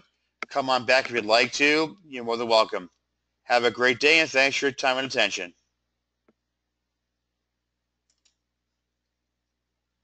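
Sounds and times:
faint clicks: 0:08.0 - 0:08.4.

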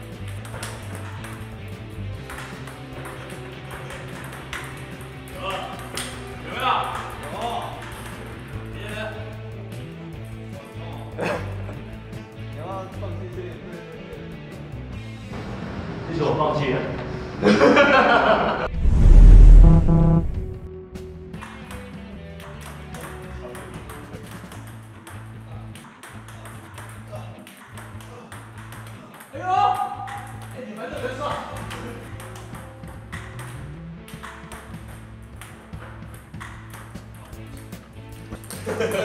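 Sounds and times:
background music with bass: 0:00.0 - 0:15.3, 0:18.6 - 0:23.3, 0:31.8 - 0:39.0
table tennis ball clicking: 0:02.3 - 0:05.1
short rising pitched sound: 0:18.6 - 0:20.7.

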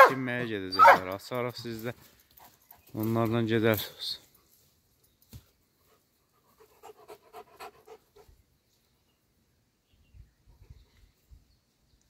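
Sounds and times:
dog panting: 0:05.9 - 0:08.3.

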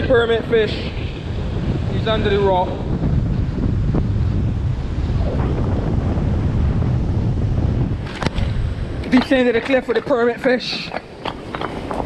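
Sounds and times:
wind buffeting microphone: 0:00.0 - 0:12.0
surf breaking on rocks: 0:04.8 - 0:12.0.

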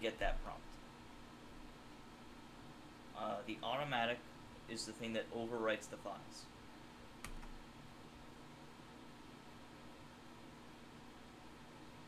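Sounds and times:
faint room hiss: 0:00.0 - 0:12.0
keyboard keystroke: 0:07.2 - 0:07.6.

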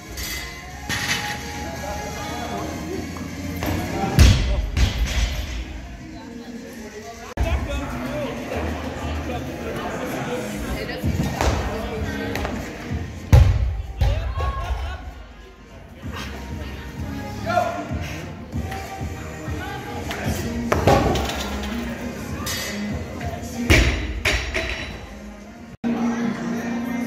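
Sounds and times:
voices: 0:00.6 - 0:27.0.

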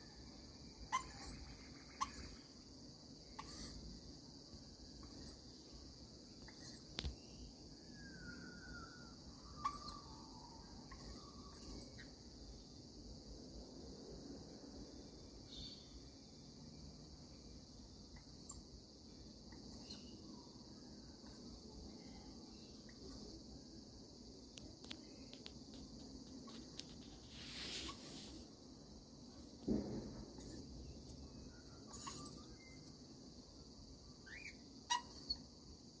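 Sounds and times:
high-pitched insect drone: 0:00.0 - 0:13.0, 0:14.9 - 0:36.0
high bird chirps: 0:08.0 - 0:10.2, 0:22.9 - 0:23.4, 0:30.4 - 0:32.9, 0:34.2 - 0:35.5
rustle: 0:24.4 - 0:33.1.

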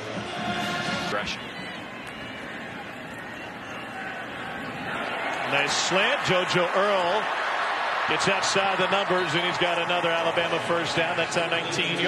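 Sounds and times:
stadium crowd roar: 0:00.0 - 0:12.0.

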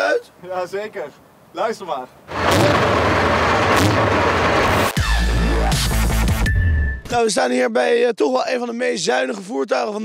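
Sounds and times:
tank diesel engine running: 0:02.3 - 0:05.0.

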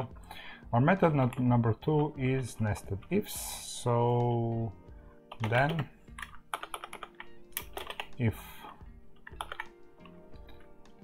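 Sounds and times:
computer keyboard key clicks: 0:05.3 - 0:08.2, 0:09.2 - 0:10.2.

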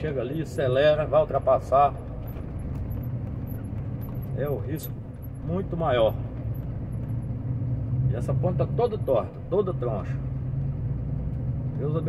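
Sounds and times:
road noise: 0:00.0 - 0:12.0
truck engine droning: 0:00.0 - 0:12.0.

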